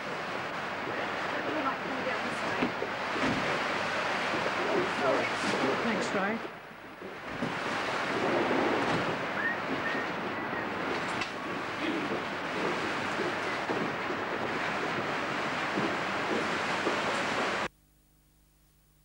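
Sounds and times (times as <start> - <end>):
rain: 0.0 - 17.7
wind: 0.0 - 17.7
footsteps on wooden walkway: 10.8 - 17.5.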